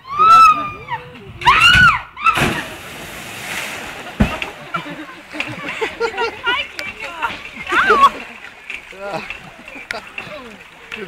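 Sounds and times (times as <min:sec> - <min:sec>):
water splashing around boat: 0:02.3 - 0:11.0.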